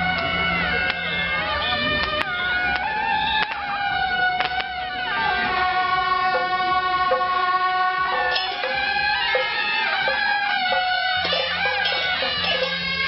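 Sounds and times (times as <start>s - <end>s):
shawms playing reedy notes: 0.0s - 13.0s
sharp percussion strikes: 6.3s - 13.0s.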